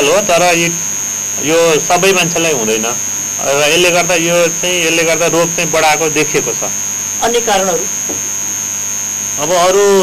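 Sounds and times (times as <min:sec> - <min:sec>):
man speaking: 0:00.0 - 0:00.8, 0:01.4 - 0:06.8, 0:09.4 - 0:10.0
electrical mains hum: 0:00.0 - 0:10.0
high-pitched whine: 0:00.0 - 0:10.0.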